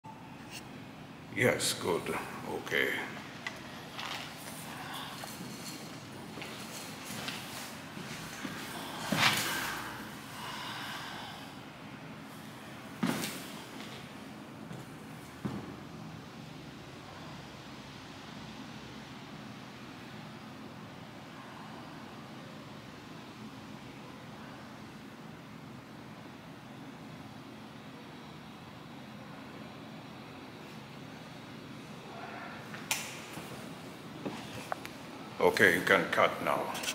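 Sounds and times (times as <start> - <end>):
low room hum: 0.0 - 36.9.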